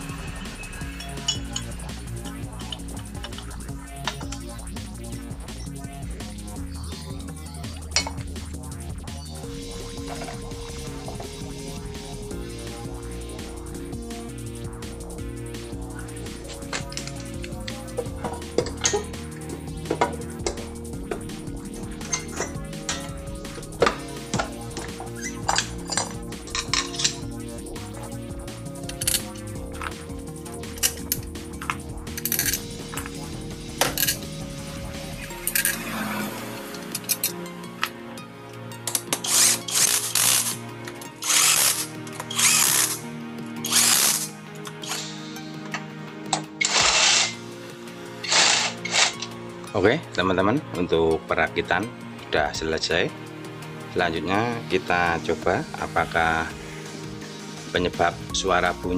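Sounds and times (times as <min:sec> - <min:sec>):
background music: 0:00.0 - 0:58.9
power tool driving bolts: 0:38.9 - 0:43.0, 0:43.6 - 0:45.0, 0:46.3 - 0:47.4, 0:48.2 - 0:49.3.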